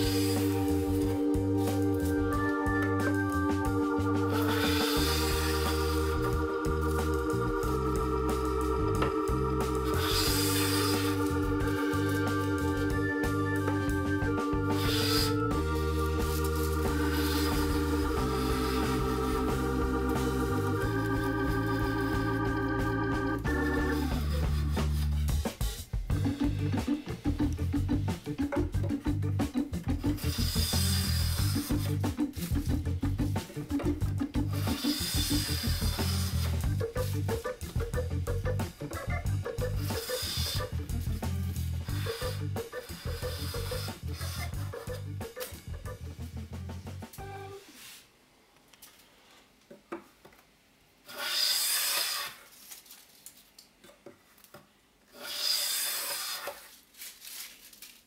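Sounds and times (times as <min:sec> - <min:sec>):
background music with a beat: 0:00.0 - 0:47.3
hand plane shaving wood: 0:04.3 - 0:06.3, 0:09.8 - 0:22.5, 0:23.5 - 0:25.4, 0:29.4 - 0:37.5, 0:41.8 - 0:45.5, 0:51.1 - 0:52.4, 0:55.1 - 0:56.7.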